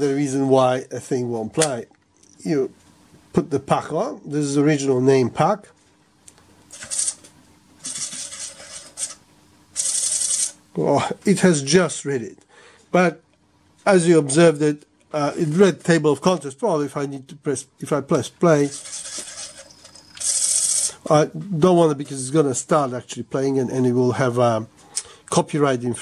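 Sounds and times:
faint steady whine of disc spinning: 0.0 - 26.0
cd rattling as it spins: 6.3 - 10.7, 18.4 - 21.1.

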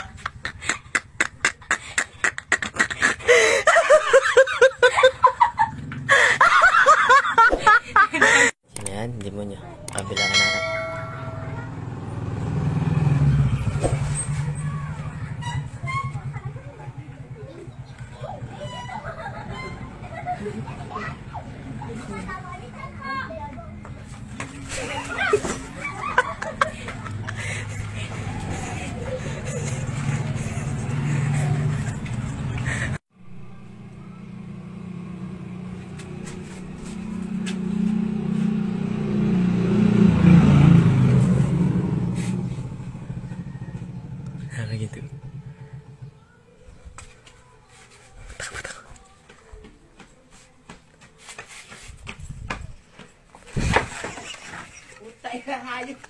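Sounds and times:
vehicle engine running: 10.6 - 47.1
people talking: 16.1 - 29.9, 55.0 - 56.0.

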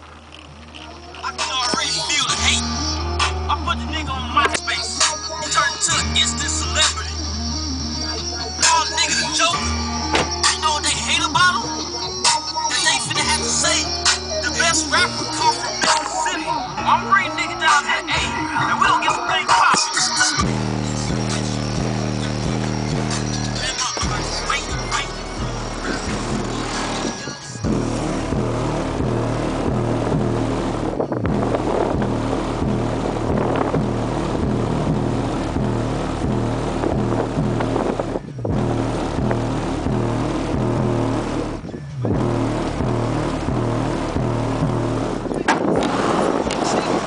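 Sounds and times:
bass-heavy rap music through subwoofer: 0.0 - 47.0.

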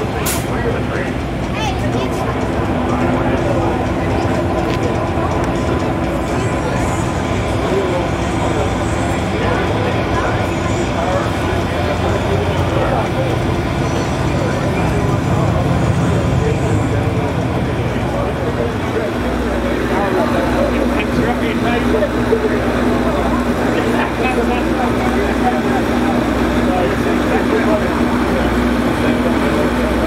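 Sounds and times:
many people talking: 0.0 - 30.0
steady mechanical hum: 0.0 - 30.0.

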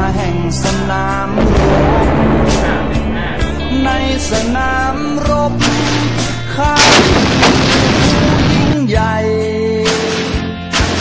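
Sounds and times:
song with singing: 0.0 - 7.1
artillery gun blast: 1.4 - 4.9, 5.6 - 8.8, 9.9 - 11.0.

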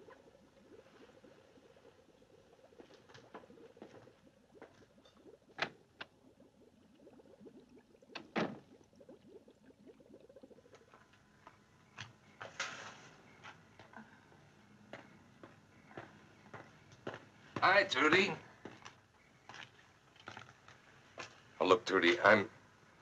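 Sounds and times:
faint background hiss: 0.0 - 23.0.

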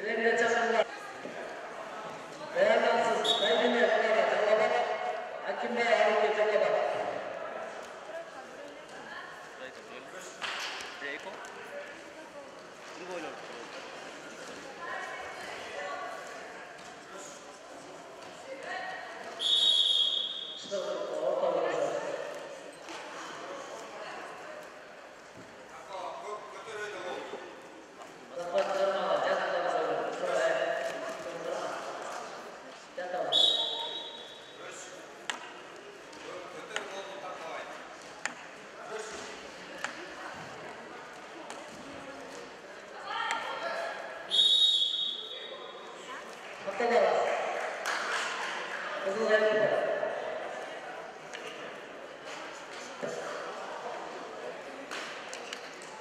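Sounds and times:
short high whistle blasts: 19.4 - 20.6, 33.4 - 34.4, 44.3 - 45.4.

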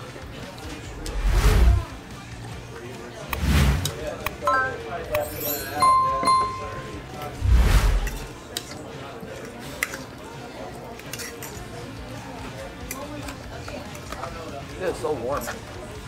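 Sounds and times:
murmur of voices: 0.0 - 16.0
background music: 0.8 - 8.4
forks clinking on plates: 4.5 - 7.0, 11.0 - 11.6.

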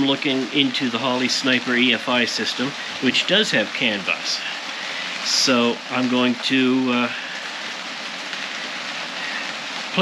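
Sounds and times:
rain on a metal roof: 0.0 - 10.0.

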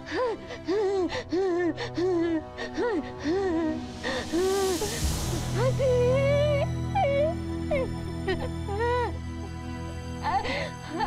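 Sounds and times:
woman sobbing: 0.0 - 9.2, 10.2 - 11.0
soft background music: 0.0 - 11.0.

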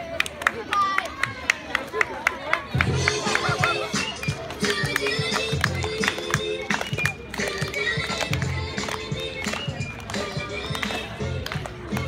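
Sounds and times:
music with steady beat: 2.8 - 12.0.

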